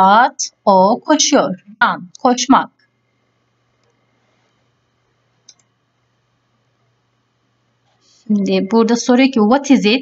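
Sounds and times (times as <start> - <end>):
computer mouse click: 5.4 - 5.7.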